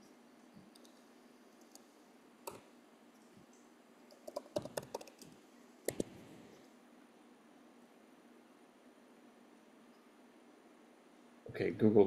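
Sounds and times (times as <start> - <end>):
computer keyboard keystrokes: 2.4 - 2.6, 4.1 - 6.1.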